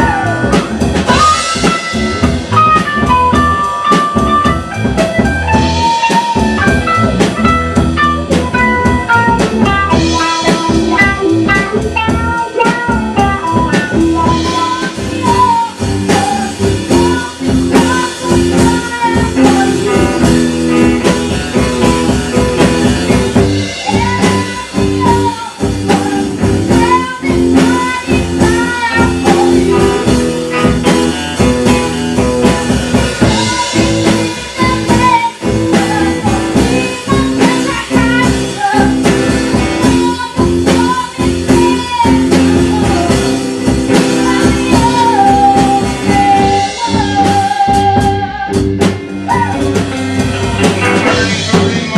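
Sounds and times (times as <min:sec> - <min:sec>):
blues rock band playing: 0:00.0 - 0:51.9
drum kit beat: 0:00.0 - 0:51.9
electric guitar: 0:00.0 - 0:51.9.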